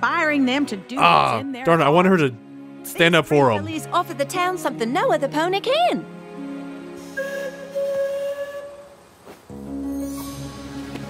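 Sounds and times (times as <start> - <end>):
soft background music: 0.0 - 11.0
steam train whistle blast: 7.0 - 9.0.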